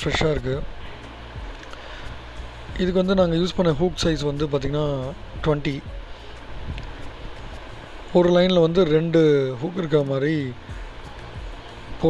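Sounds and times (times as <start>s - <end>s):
background hiss with low rumble: 0.0s - 12.0s.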